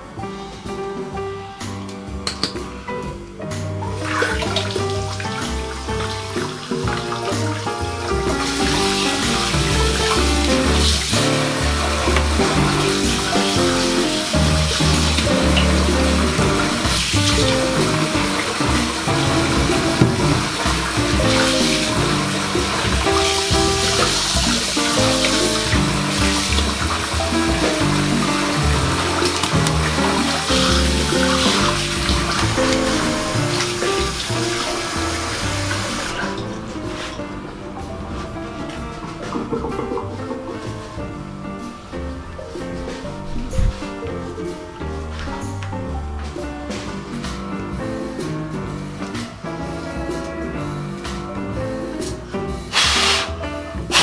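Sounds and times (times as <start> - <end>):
background music: 0.0 - 54.0
tap running into ceramic sink: 2.2 - 2.6, 14.4 - 23.2, 39.1 - 40.7
hands rinsing under water: 3.5 - 45.6, 52.0 - 54.0.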